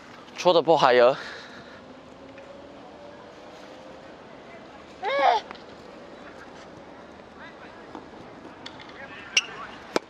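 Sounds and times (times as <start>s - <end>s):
faint distant voices: 1.0s - 10.0s.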